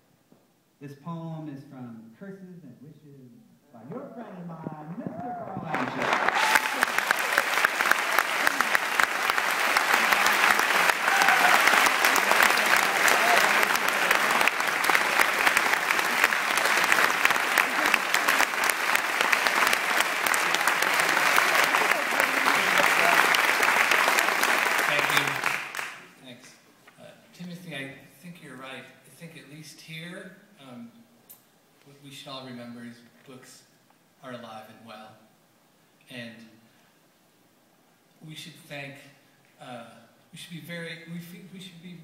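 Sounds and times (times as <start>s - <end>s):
audience applauding: 3.9s - 26.2s.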